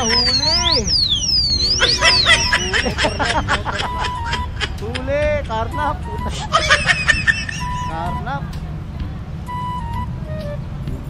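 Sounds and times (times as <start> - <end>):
motorcycle alarm siren and chirps: 0.0 - 4.8, 5.8 - 8.4.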